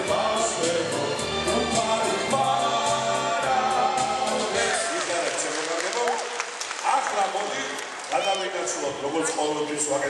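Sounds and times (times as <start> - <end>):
sung song: 0.0 - 5.2
audience clapping: 4.5 - 8.8.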